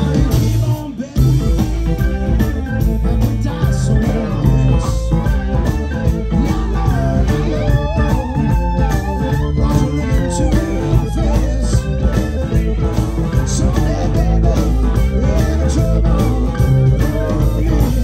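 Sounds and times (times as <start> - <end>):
blues-rock band playing: 0.0 - 18.0
electric guitar bending notes: 0.0 - 18.0.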